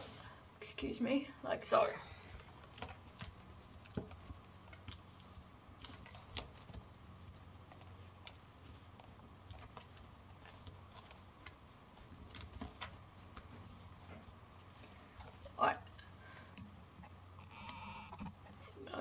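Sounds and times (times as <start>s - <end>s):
flax strips clicking and crackling: 2.2s - 18.7s.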